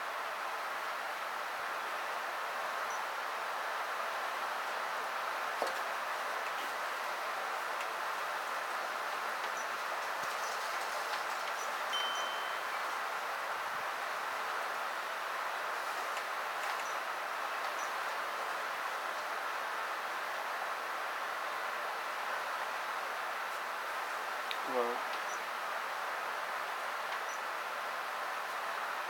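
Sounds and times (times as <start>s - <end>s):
steady background hiss: 0.0s - 29.0s
faint high-pitched tinkles: 11.9s - 12.9s.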